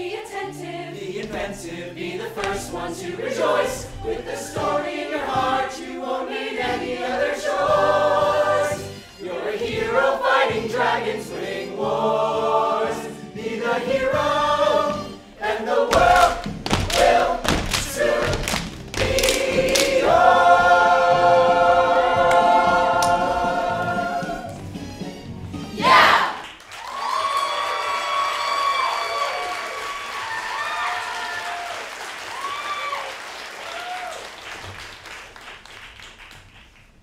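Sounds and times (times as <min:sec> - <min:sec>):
choir singing in harmony: 0:00.0 - 0:24.8, 0:25.6 - 0:26.4.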